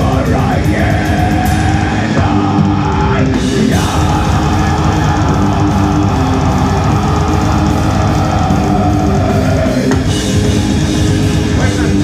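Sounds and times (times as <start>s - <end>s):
drums: 0.0s - 12.0s
electric guitar: 0.0s - 12.0s.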